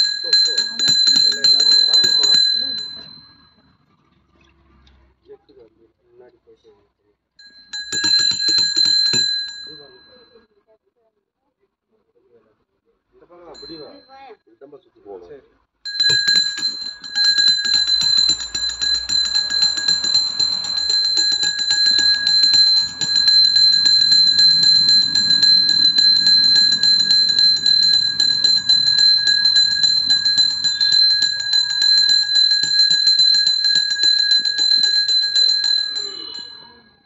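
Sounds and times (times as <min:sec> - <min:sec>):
hand bell ringing rapidly: 0:00.0 - 0:03.5, 0:07.4 - 0:10.2, 0:13.6 - 0:14.0, 0:15.9 - 0:36.9.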